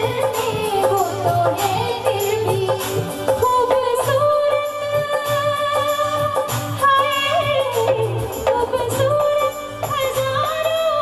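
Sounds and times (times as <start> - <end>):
band with keyboard: 0.0 - 11.0
woman singing: 0.0 - 11.0.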